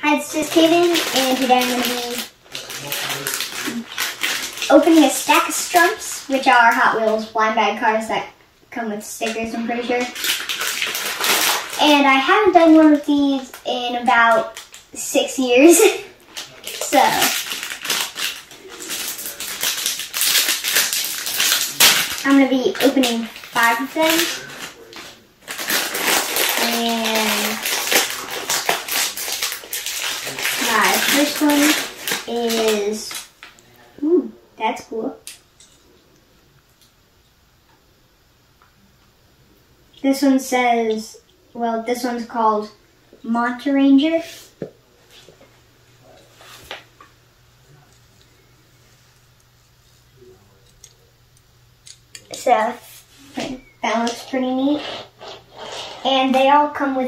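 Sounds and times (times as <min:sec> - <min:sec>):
steady low hum: 0:00.0 - 0:57.0
plastic wrapper crinkling and tearing: 0:00.2 - 0:07.2, 0:09.8 - 0:12.2, 0:14.2 - 0:15.0, 0:15.7 - 0:33.8.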